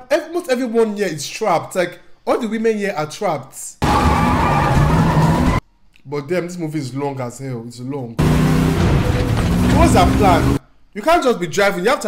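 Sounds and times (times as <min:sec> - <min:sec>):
tyres squealing: 0:03.8 - 0:05.6, 0:08.2 - 0:10.6
car engine running: 0:08.2 - 0:10.6.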